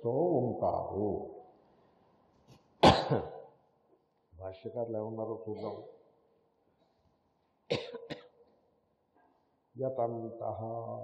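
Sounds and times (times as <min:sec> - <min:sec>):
person coughing: 0:02.8 - 0:03.5, 0:05.5 - 0:06.0, 0:07.7 - 0:08.4.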